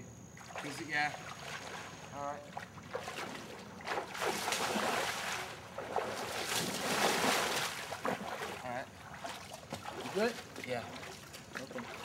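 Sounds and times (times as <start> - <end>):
legs wading through water: 0.4 - 12.0.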